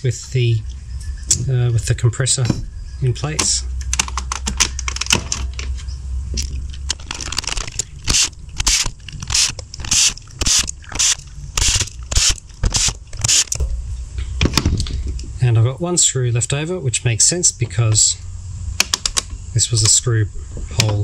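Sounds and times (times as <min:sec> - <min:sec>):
plastic parts scraping: 0:03.9 - 0:13.7.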